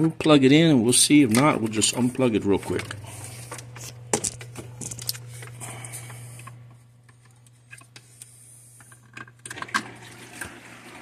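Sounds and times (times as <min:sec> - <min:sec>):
steady low hum: 0:00.0 - 0:09.4
power cords rustling: 0:01.0 - 0:10.0.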